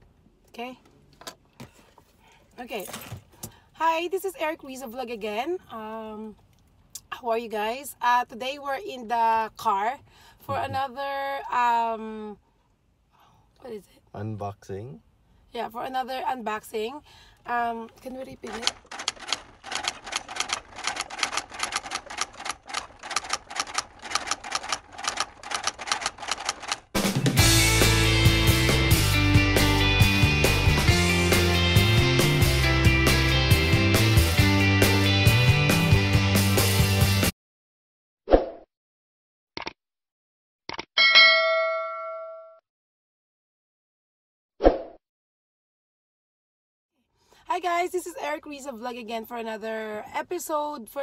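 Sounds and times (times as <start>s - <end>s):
typewriter keystroke clicks: 18.5s - 26.8s
bright bell chime: 41.0s - 42.6s.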